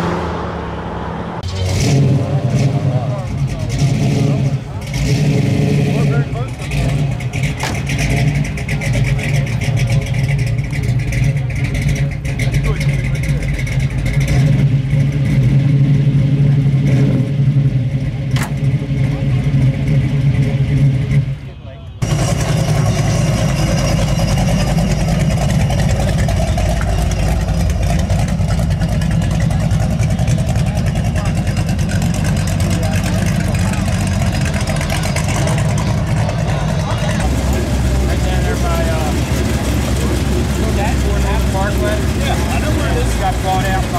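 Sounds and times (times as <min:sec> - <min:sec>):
car engine rumbling driving past: 0:00.0 - 0:43.9
car engine idling: 0:00.9 - 0:43.9
voices in background: 0:02.4 - 0:14.8, 0:23.8 - 0:43.9.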